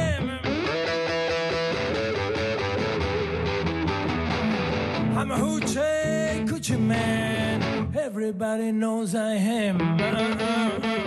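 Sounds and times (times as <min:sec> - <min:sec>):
band backing: 0:00.0 - 0:08.0, 0:09.8 - 0:11.0
electric blues guitar bending notes: 0:00.0 - 0:08.2, 0:09.5 - 0:11.0.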